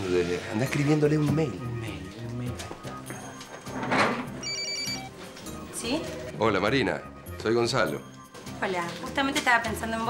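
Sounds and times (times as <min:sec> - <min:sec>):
phone ringtone beeping: 0:03.3 - 0:05.3.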